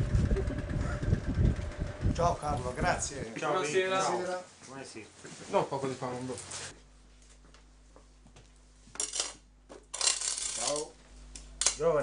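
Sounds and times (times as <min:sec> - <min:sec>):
coins dropping and clinking: 0:09.0 - 0:10.8.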